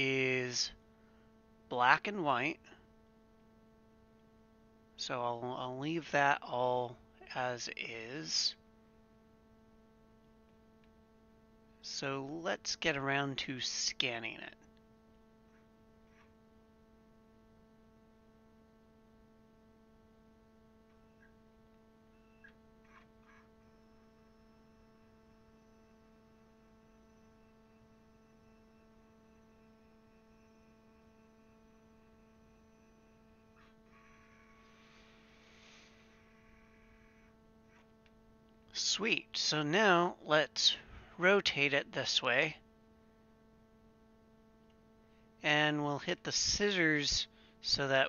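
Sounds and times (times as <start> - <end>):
scanner motor humming: 0.0 - 40.3
scanner whirring: 0.0 - 48.0.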